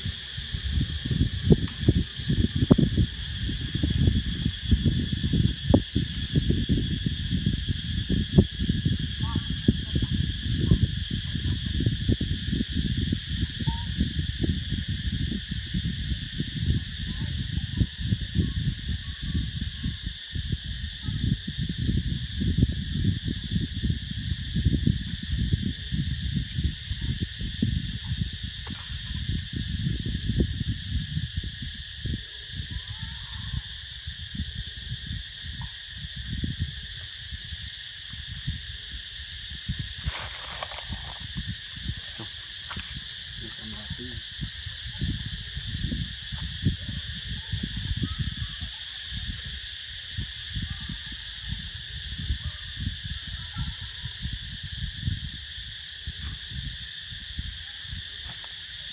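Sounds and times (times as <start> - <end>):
insects droning: 0.0 - 58.9
wind buffeting microphone: 0.0 - 58.9.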